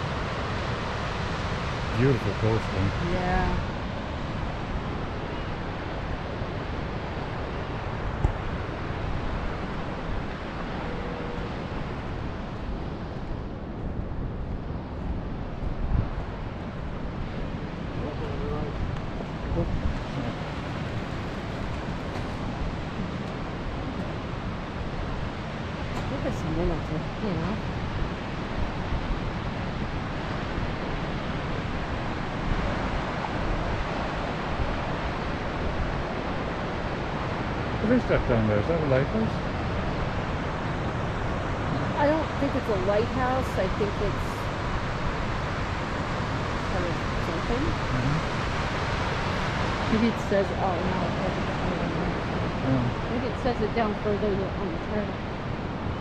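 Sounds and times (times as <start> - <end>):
ocean surf: 0.0 - 56.0
wind buffeting microphone: 0.0 - 56.0.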